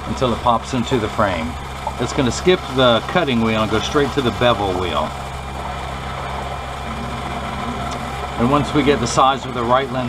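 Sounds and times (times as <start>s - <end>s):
lens grinding machine hum: 0.0s - 10.0s.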